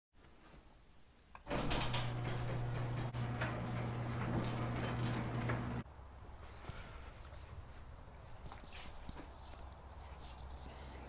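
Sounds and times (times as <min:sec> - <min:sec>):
garage door opener motor hum: 0:01.4 - 0:05.8
garage door rattling on track: 0:01.5 - 0:05.8.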